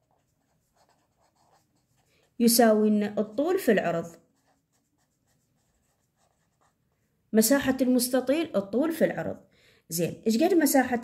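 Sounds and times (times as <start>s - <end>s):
pen writing on paper: 0.0s - 2.1s, 4.4s - 6.8s.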